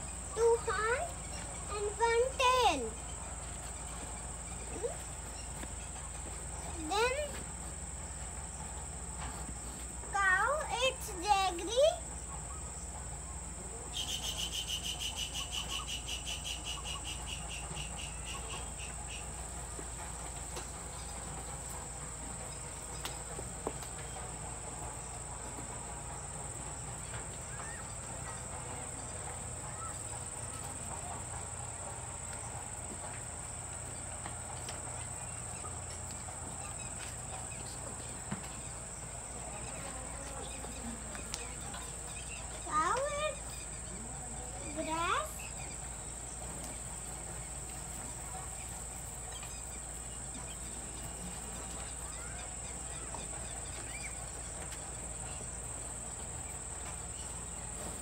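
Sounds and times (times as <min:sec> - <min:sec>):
insects chirring drone: 0:00.0 - 0:58.0
rapidly pulsing insect call: 0:00.0 - 0:58.0.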